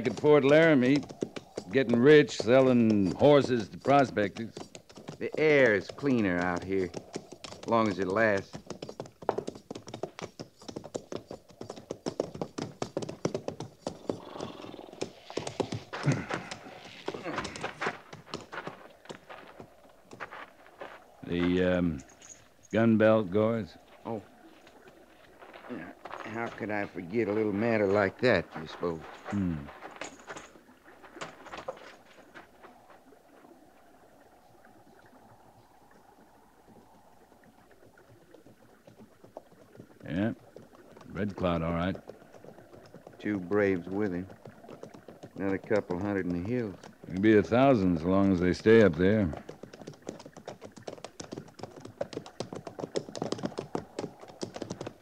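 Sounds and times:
horse hooves clopping: 0:00.0 - 0:55.0
stream running: 0:00.0 - 0:55.0.

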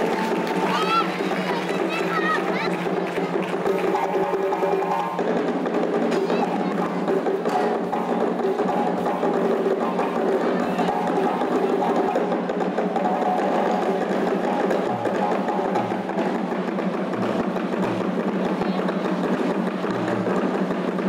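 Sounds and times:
djembe ensemble playing: 0:00.0 - 0:21.0.

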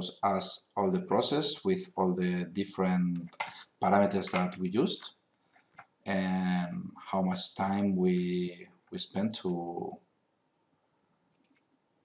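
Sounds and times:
computer mouse clicks: 0:11.3 - 0:11.7.

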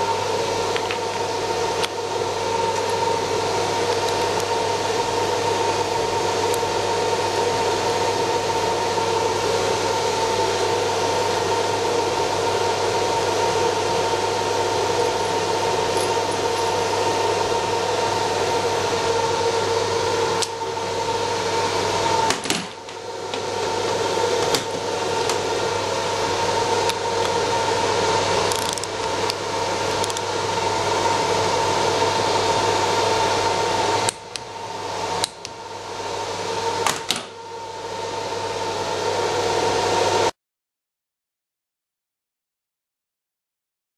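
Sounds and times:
machinery drone: 0:00.0 - 0:39.9.

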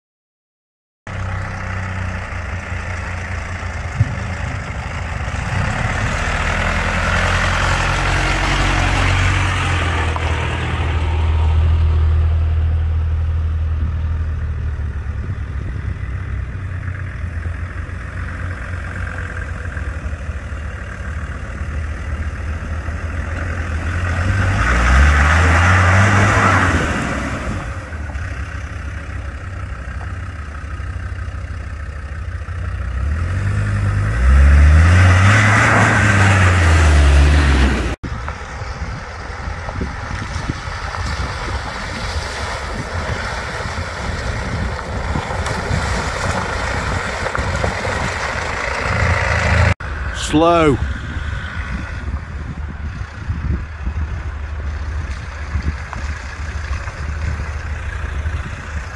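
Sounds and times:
off-road vehicle engines revving: 0:01.1 - 0:58.9.

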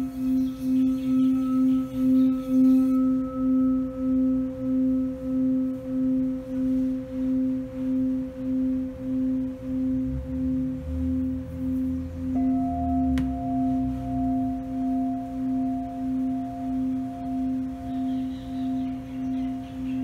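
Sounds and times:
mallet rubbing bowl rim: 0:00.0 - 0:20.0
singing bowl ringing: 0:00.0 - 0:20.0
faint low rumble: 0:01.3 - 0:20.0.

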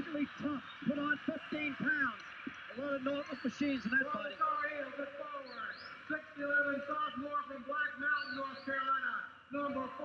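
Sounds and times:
man announcing: 0:00.0 - 0:10.0.

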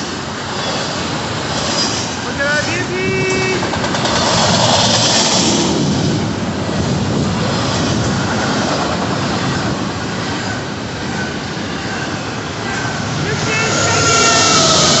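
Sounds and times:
train wheels rumbling on rails: 0:00.0 - 0:15.0.

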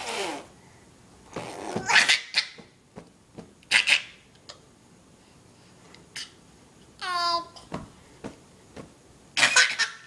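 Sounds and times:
baby laughing: 0:01.6 - 0:02.8, 0:03.7 - 0:04.2, 0:09.4 - 0:10.0.

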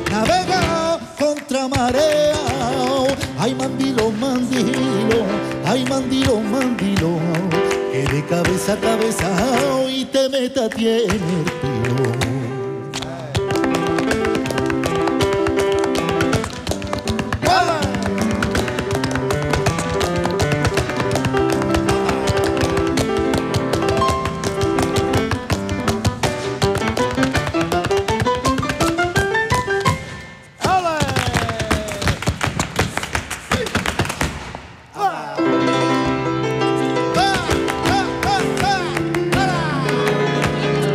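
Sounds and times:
flamenco piano music: 0:00.0 - 0:34.7, 0:35.4 - 0:40.9
hand clapping: 0:10.6 - 0:34.6, 0:37.2 - 0:40.9.

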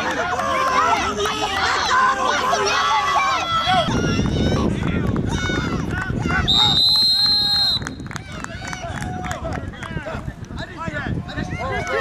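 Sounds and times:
people shouting: 0:00.4 - 0:06.8
referee's whistle blast: 0:06.5 - 0:07.9.

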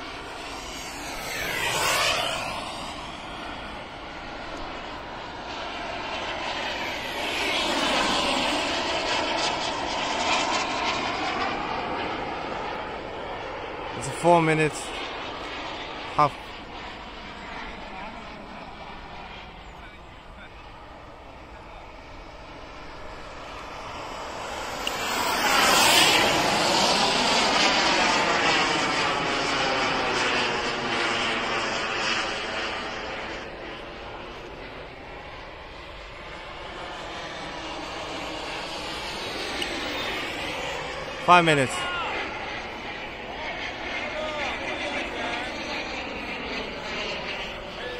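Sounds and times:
model jet turbine whine flying past: 0:00.0 - 0:47.9.

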